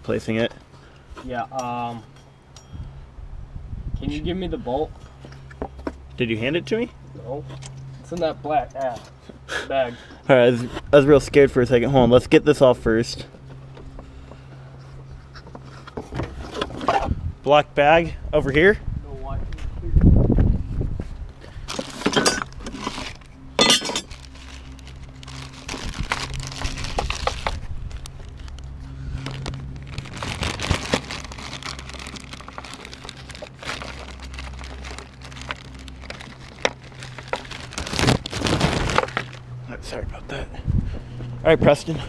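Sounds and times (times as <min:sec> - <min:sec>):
steady low hum: 0:01.9 - 0:42.0
metal tools clinking and rattling: 0:21.8 - 0:24.4.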